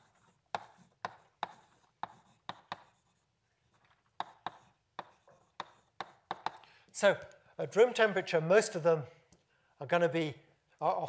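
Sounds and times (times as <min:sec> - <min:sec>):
chalk tapping on blackboard: 0:00.0 - 0:06.6.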